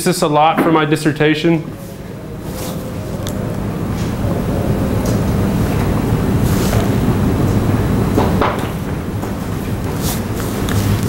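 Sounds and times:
speech: 0.0 - 1.7
low hum: 0.0 - 11.0
steady rumbling noise: 0.0 - 11.0.

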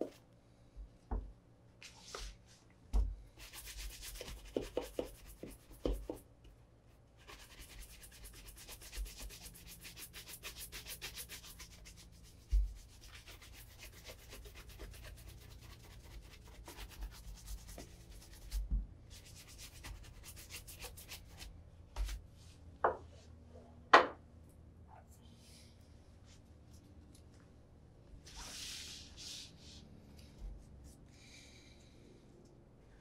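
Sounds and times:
shoe brush brushing leather shoe: 3.4 - 6.1, 7.2 - 21.5.

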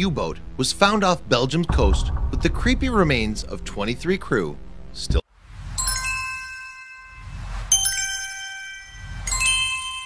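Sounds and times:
low rumbling swell: 0.3 - 5.6.

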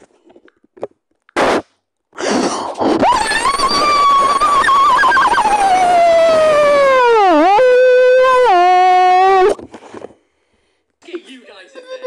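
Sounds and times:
cartoon crying wail: 3.0 - 9.5.

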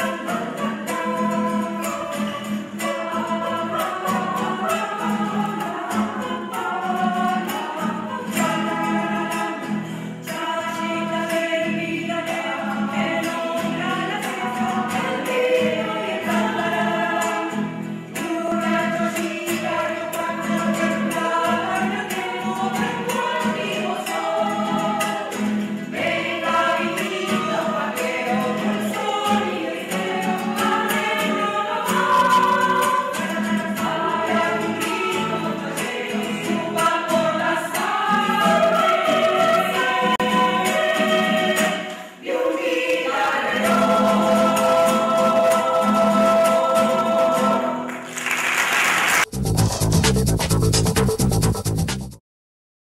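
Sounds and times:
choir singing in harmony: 0.0 - 48.2.

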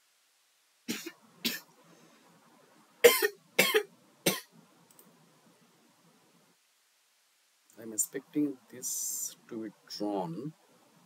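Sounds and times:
person coughing: 3.0 - 4.5.

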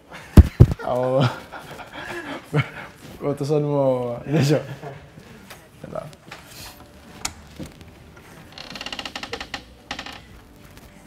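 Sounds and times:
man laughing breathily: 0.0 - 3.0
loud sharp thumps: 0.4 - 0.8.

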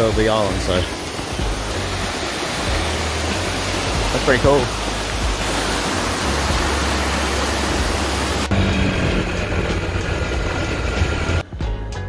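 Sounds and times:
waterfall splashing over rocks: 0.0 - 11.4
background music with a beat: 0.1 - 5.8, 9.2 - 12.0.

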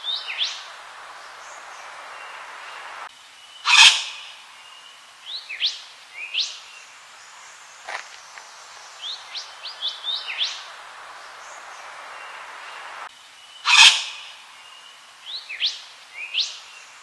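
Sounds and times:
steady background hiss: 0.0 - 17.0.

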